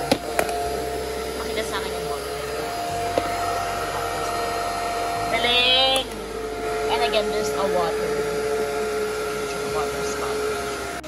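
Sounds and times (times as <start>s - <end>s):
vacuum motor hum with whine: 0.0s - 11.0s.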